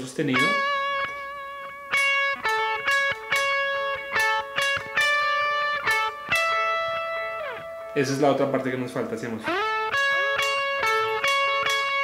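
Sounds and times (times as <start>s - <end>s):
clean electric guitar melody: 0.3s - 12.0s.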